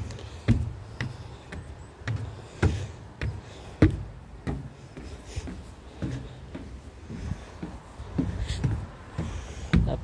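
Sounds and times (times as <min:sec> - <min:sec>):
footsteps on wooden boards: 0:00.0 - 0:10.0.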